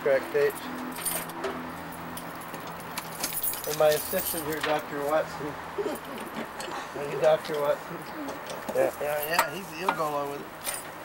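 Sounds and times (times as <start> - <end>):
keys jingling: 0.6 - 5.2, 10.6 - 11.0.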